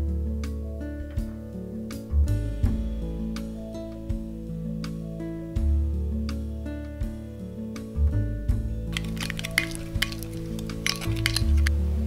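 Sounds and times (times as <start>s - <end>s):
light acoustic background music: 0.0s - 12.0s
spoon scraping glass bowl: 8.9s - 11.7s.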